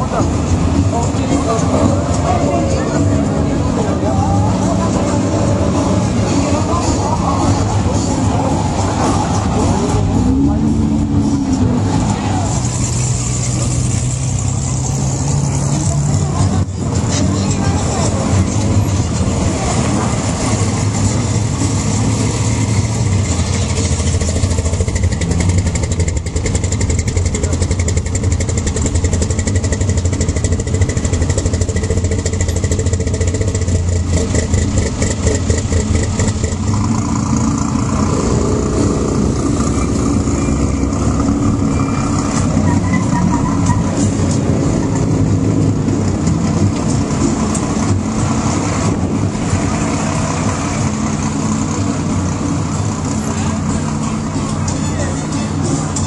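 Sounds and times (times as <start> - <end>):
truck engines rumbling at low revs: 0.0 - 56.0.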